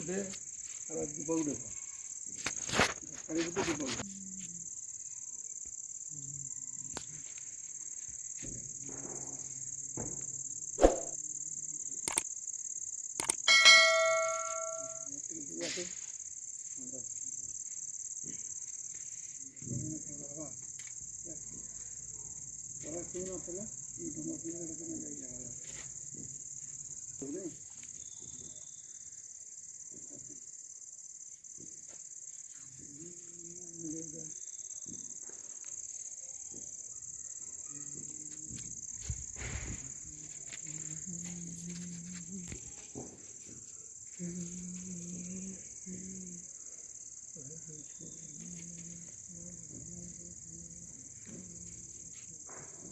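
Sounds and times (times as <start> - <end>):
crickets chirping: 0.0 - 52.9.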